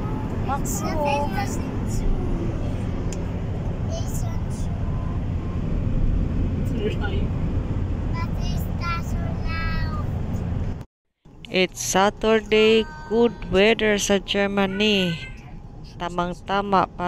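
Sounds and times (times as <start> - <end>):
car road and engine rumble: 0.0 - 17.0.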